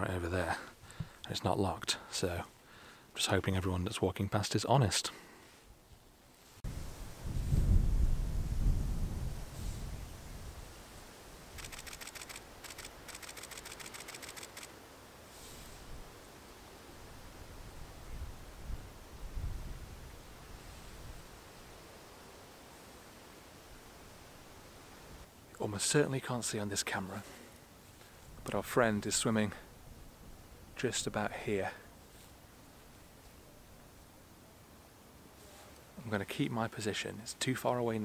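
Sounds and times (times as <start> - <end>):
camera shutter clicks: 11.6 - 14.8.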